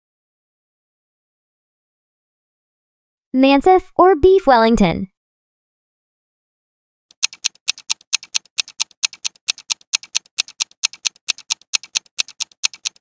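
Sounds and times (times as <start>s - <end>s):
fast clock-like ticking: 7.1s - 13.0s.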